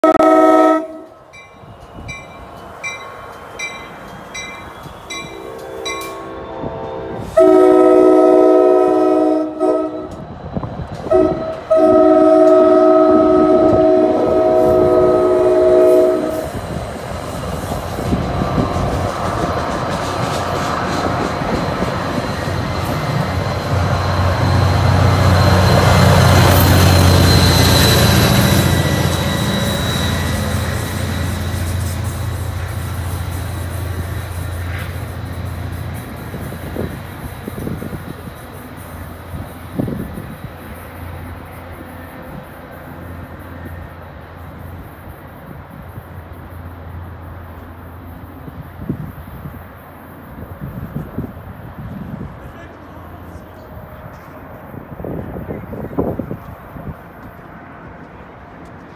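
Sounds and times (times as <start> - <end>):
multi-chime train horn: 0.0 - 3.0, 4.4 - 10.2, 11.1 - 16.6
diesel locomotive engine drone: 0.0 - 58.9
train wheels clicking on rails: 1.0 - 7.4, 15.8 - 58.9.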